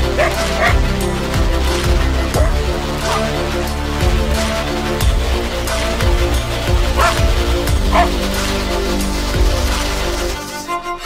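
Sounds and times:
coyote barking and yipping: 0.0 - 0.9, 2.3 - 3.4, 6.9 - 8.3
music with steady beat: 0.0 - 10.7.

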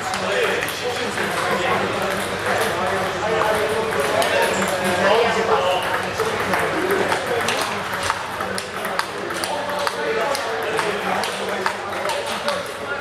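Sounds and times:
table tennis balls clicking: 0.1 - 5.2, 5.8 - 12.7.

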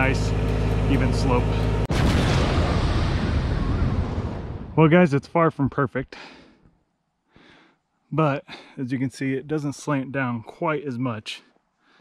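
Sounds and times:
boom-like whoosh: 1.8 - 4.9.

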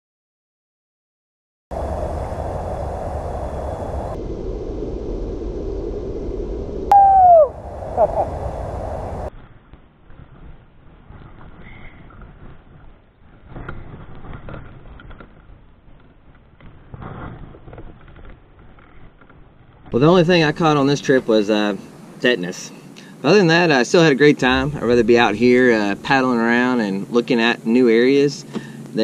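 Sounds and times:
wind on camera: 1.7 - 9.5, 24.4 - 27.8
person shouting: 6.9 - 7.5.

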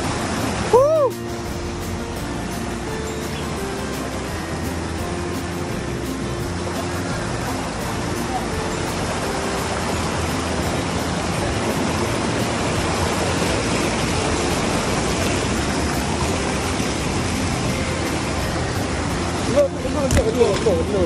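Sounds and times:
stream rushing over rocks: 0.0 - 21.0.

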